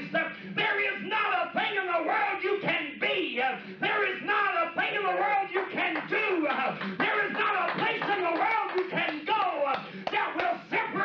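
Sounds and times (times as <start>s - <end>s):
man preaching into a microphone: 0.0s - 11.0s.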